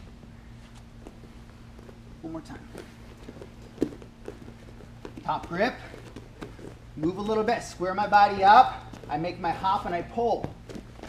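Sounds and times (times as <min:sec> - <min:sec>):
bodies shifting on foam mats: 0:00.0 - 0:11.0
low room hum: 0:00.0 - 0:11.0
soft taps on mats: 0:00.6 - 0:07.5.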